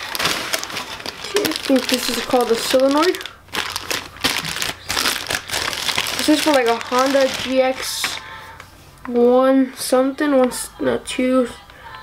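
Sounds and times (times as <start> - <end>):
plastic bag crinkling: 0.0 - 8.4.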